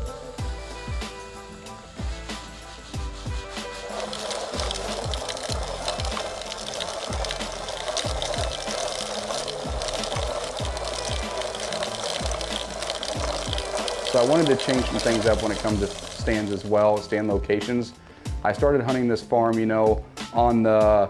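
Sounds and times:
background music with steady beat: 0.0s - 21.0s
seed pellets pouring into plastic hopper: 2.3s - 17.0s.

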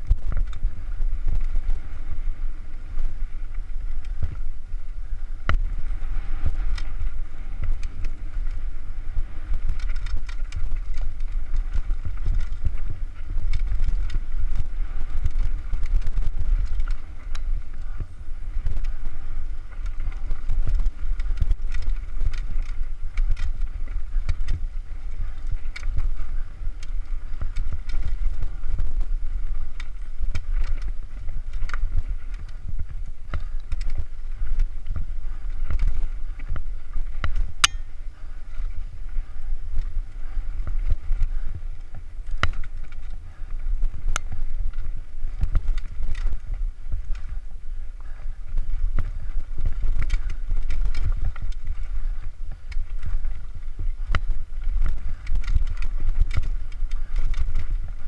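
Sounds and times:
bike rattling and knocking on rocks: 0.0s - 58.0s
wind buffeting microphone: 0.0s - 58.0s.

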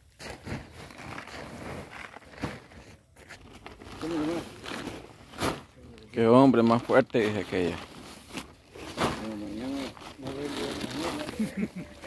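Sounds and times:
silage rustling in a sack: 0.0s - 12.0s.

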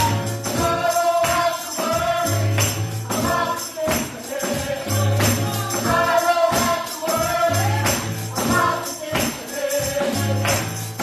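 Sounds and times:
gospel group singing: 0.0s - 11.0s
tambourine struck on the beat: 0.0s - 11.0s.

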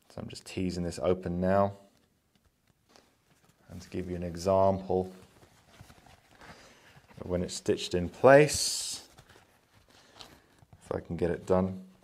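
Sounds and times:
man talking: 0.0s - 1.9s, 3.7s - 5.3s, 7.1s - 9.2s, 10.8s - 12.0s
leather rustling: 2.0s - 11.6s.

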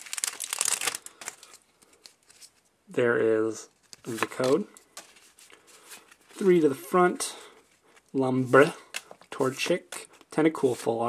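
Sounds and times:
foil wrapper crinkling: 0.0s - 2.6s
handling of cards: 0.0s - 2.7s, 3.6s - 11.0s.

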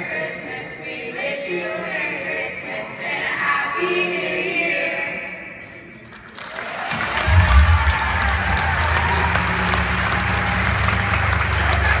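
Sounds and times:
audience applauding: 6.2s - 12.0s.

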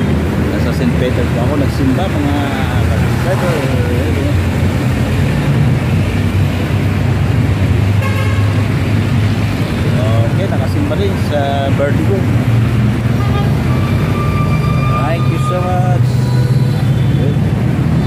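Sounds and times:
road traffic rumble: 0.0s - 18.0s
people's voices: 0.4s - 4.5s
vehicle horn toot: 8.0s - 8.6s, 13.2s - 17.4s.

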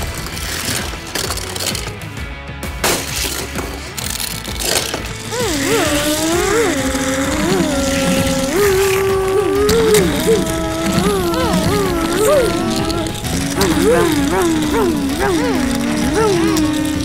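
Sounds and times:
toy cars on plastic track: 0.0s - 17.0s
people making engine noises with voices: 5.3s - 17.0s.

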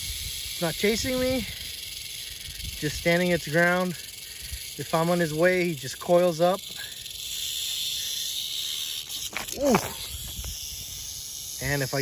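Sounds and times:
rattlesnake rattling: 0.0s - 12.0s.

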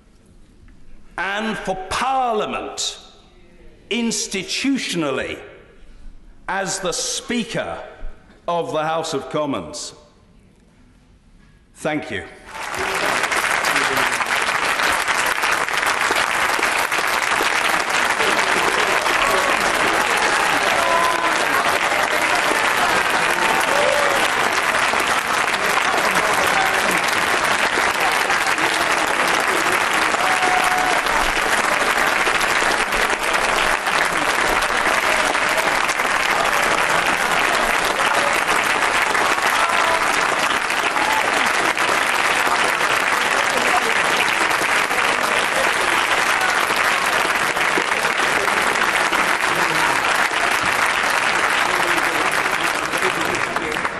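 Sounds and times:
dense steady clapping: 12.5s - 53.9s.

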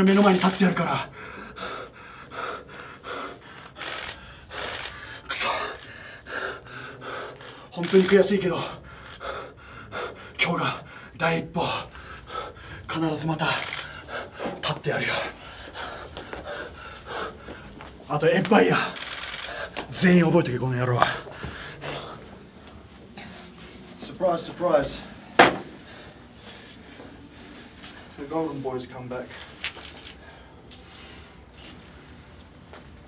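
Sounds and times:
man breathing hard: 0.9s - 18.1s, 18.7s - 19.9s, 21.0s - 24.0s, 25.0s - 28.3s, 29.3s - 31.6s.

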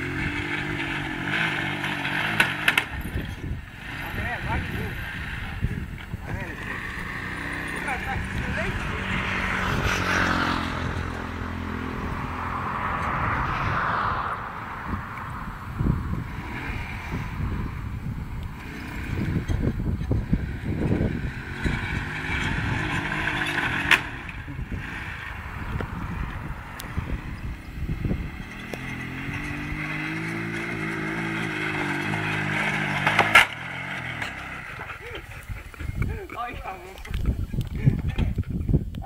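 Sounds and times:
small motorbike engine revving: 0.0s - 13.8s, 14.9s - 36.1s.

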